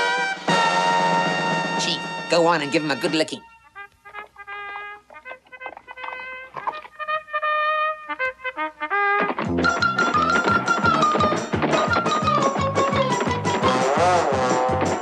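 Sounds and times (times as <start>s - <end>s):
trumpet fanfare: 0.0s - 6.2s, 7.0s - 9.9s
fast music with driving beat: 9.5s - 15.0s.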